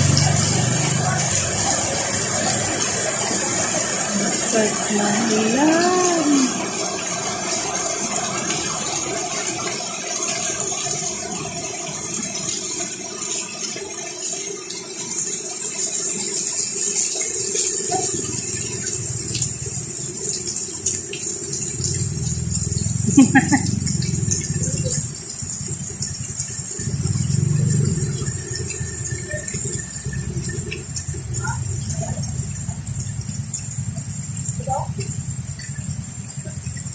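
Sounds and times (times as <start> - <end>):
passing traffic engine rumble: 0.0 - 9.7, 18.0 - 36.9
heavy rain on a street: 0.0 - 36.9.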